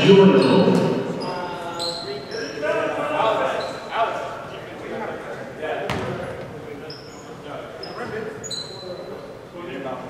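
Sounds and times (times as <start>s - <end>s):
sneaker squeaks: 0.2s - 2.6s, 3.5s - 3.9s, 5.9s - 9.3s
basketball bouncing: 5.9s - 6.5s.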